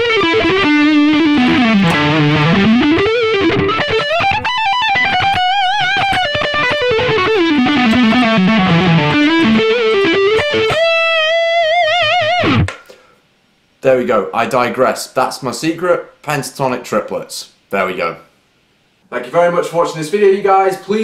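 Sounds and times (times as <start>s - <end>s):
fast electric guitar runs: 0.0s - 12.7s.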